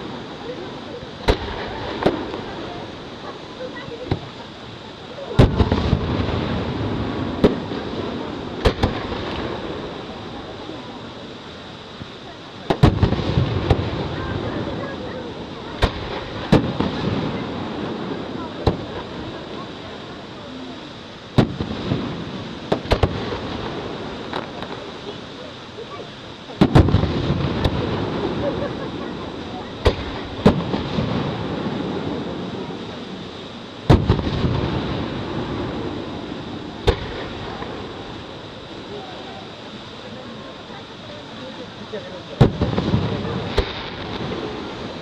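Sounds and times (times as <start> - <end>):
firework shells bursting: 1.1 - 4.6, 5.3 - 10.7, 12.6 - 20.6, 21.2 - 39.4, 42.3 - 45.0.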